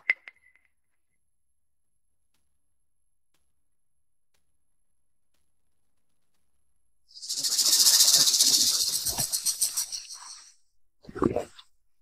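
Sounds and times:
loud rattling hiss: 0:07.1 - 0:10.4.

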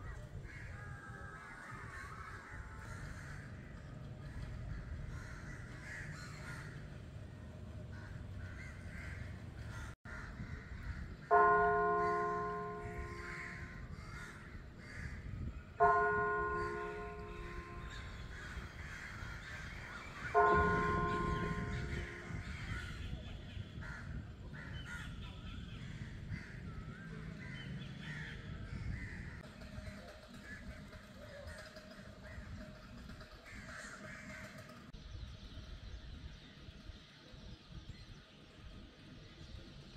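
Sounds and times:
large bell ringing: 0:11.3 - 0:13.7, 0:15.8 - 0:18.5, 0:20.2 - 0:22.8.

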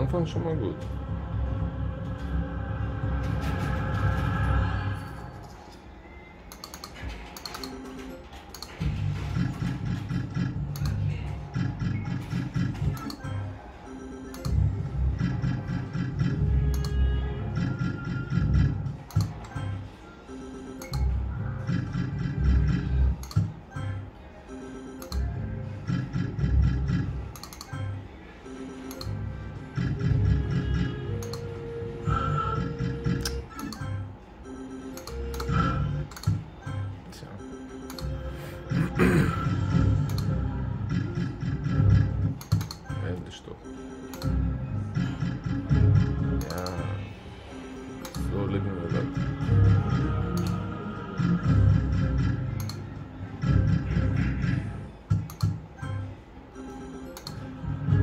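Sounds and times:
slot machine electronic jingles: 0:32.5 - 0:38.9, 0:40.2 - 0:46.8.

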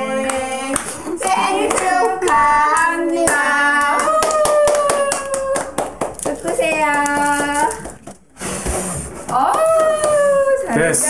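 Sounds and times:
people singing together: 0:00.0 - 0:05.0
people clapping in time: 0:00.2 - 0:08.2, 0:09.3 - 0:10.3.

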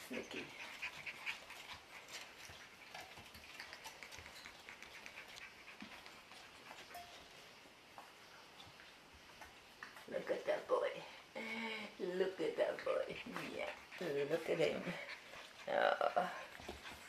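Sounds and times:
puppy claws clicking on tile: 0:00.9 - 0:06.9.

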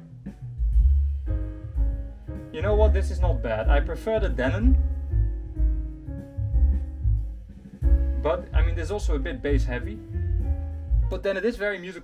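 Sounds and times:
bass-heavy music over speakers: 0:00.0 - 0:11.7
repeated low bass notes: 0:00.0 - 0:11.9.

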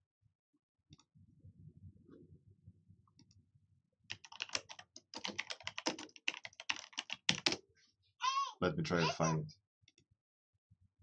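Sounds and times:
computer keyboard typing: 0:04.1 - 0:07.6.

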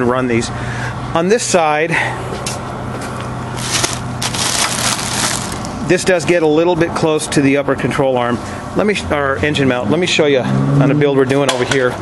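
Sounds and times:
plastic sheeting crinkling: 0:03.6 - 0:05.8.

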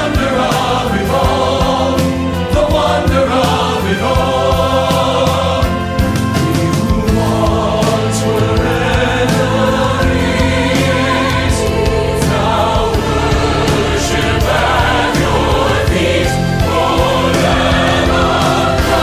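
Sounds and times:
choir singing: 0:00.0 - 0:19.0
orchestral accompaniment: 0:00.0 - 0:19.0
percussion hits: 0:00.0 - 0:19.0.

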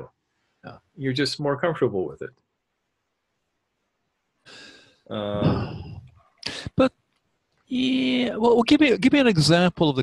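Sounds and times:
man breathing in: 0:04.5 - 0:06.7.

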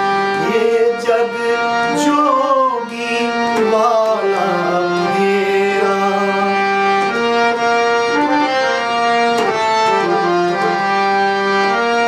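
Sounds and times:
harmonium reed tones: 0:00.0 - 0:12.0
man singing: 0:00.3 - 0:07.1.

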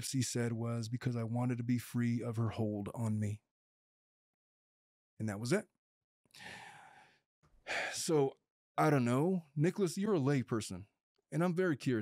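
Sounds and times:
man speaking: 0:00.0 - 0:03.4, 0:05.2 - 0:05.7, 0:11.4 - 0:12.0.

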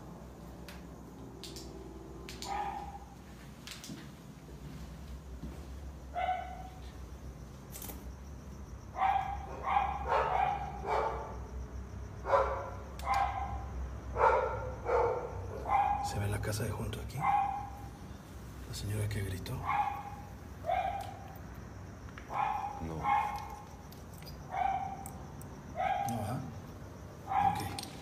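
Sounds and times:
dog barking: 0:02.4 - 0:03.2, 0:06.1 - 0:06.8, 0:08.9 - 0:11.4, 0:12.2 - 0:16.2, 0:17.2 - 0:18.0, 0:19.6 - 0:21.3, 0:22.3 - 0:23.8, 0:24.5 - 0:25.2, 0:25.8 - 0:26.3, 0:27.2 - 0:27.8.

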